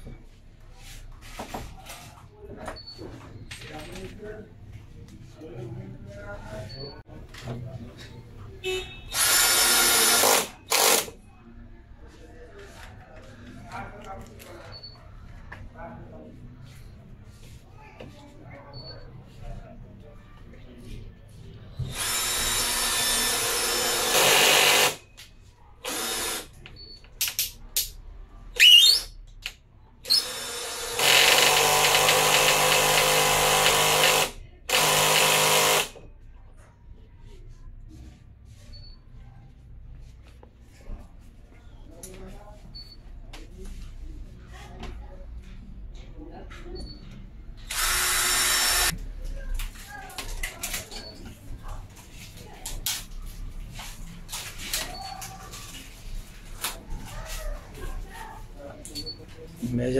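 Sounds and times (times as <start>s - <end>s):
cordless drill into wood: 9.1s - 11.1s, 21.9s - 25.0s, 25.8s - 26.5s, 30.1s - 36.0s, 47.7s - 48.9s.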